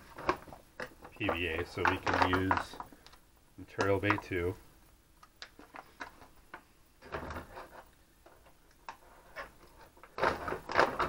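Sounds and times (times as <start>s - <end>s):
crinkling plastic bag: 0.0s - 3.1s.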